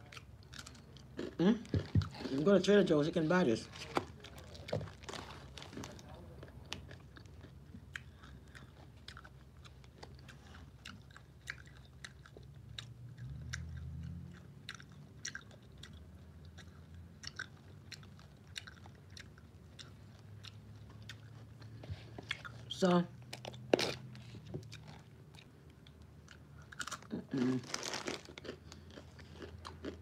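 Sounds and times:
person chewing crackers: 0:00.0 - 0:02.9, 0:03.6 - 0:30.0.

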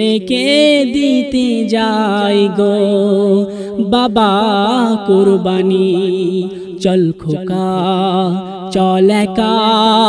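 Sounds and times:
man singing melismatic devotional song: 0:00.0 - 0:10.0.

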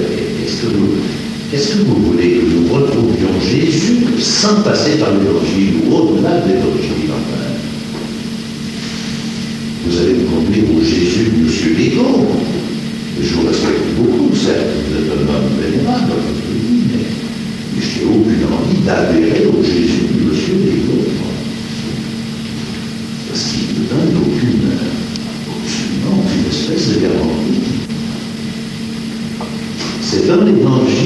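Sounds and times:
tape hiss: 0:00.0 - 0:31.0.

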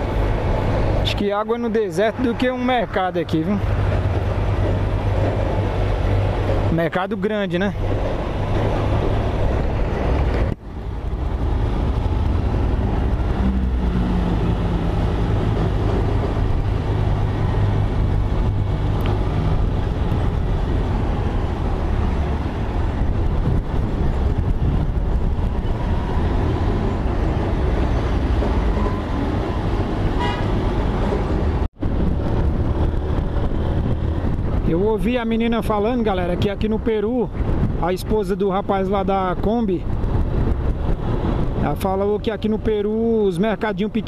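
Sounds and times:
road and wind noise: 0:00.0 - 0:44.0.

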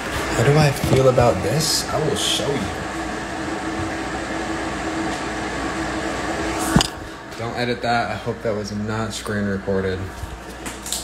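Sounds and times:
mechanical hum with rushing: 0:00.0 - 0:11.0.

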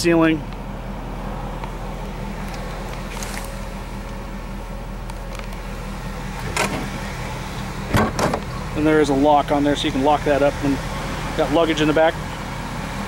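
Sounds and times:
vehicle engine idling: 0:00.0 - 0:13.0.

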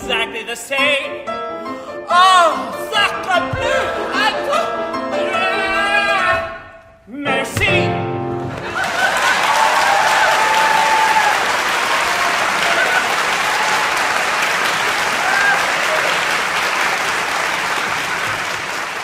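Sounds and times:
audience applauding: 0:08.4 - 0:19.0
voices cheering: 0:08.7 - 0:16.7.

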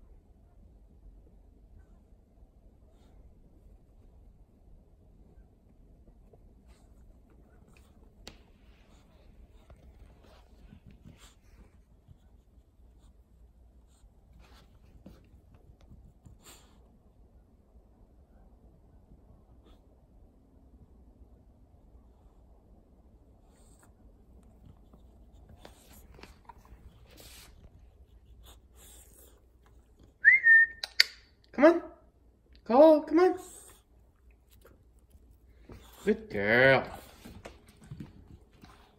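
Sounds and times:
faint rustles: 0:23.4 - 0:30.2
person whistling: 0:30.2 - 0:31.1.

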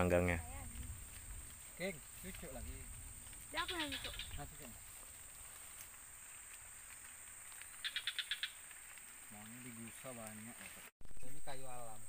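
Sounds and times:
high insect drone: 0:00.0 - 0:12.0
bird chirps: 0:03.5 - 0:04.5, 0:07.6 - 0:08.6.

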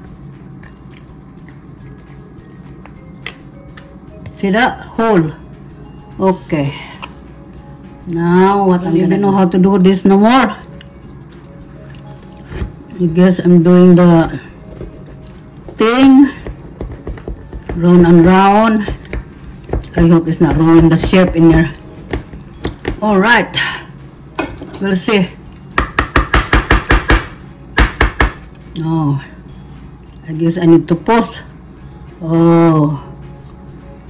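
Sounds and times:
quiet background music: 0:00.0 - 0:34.0.

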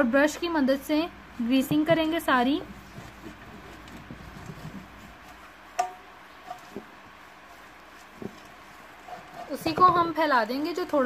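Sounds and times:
soft brushing in a metal tin: 0:01.4 - 0:11.0
brush tapping metal tin: 0:02.9 - 0:07.0, 0:07.8 - 0:11.0.

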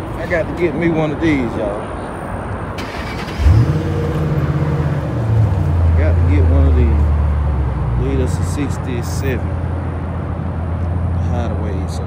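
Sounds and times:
car engine starting and idling: 0:02.7 - 0:09.8.

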